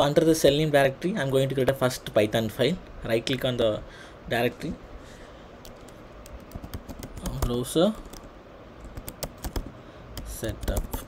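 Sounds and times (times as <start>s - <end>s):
computer keyboard typing: 5.6s - 11.0s.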